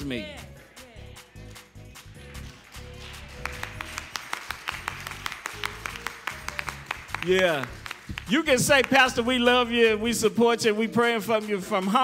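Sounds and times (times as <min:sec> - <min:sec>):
fast sharp percussive hits: 0:03.8 - 0:12.0.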